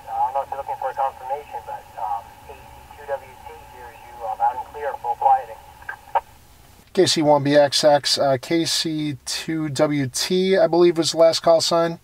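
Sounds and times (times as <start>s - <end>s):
voice over radio speaker: 0.0s - 6.3s.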